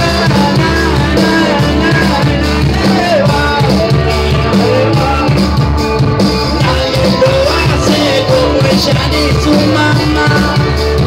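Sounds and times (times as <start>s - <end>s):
bass guitar: 0.0s - 11.0s
drum kit: 0.0s - 11.0s
electric guitars: 0.0s - 11.0s
lead singer: 0.0s - 11.0s.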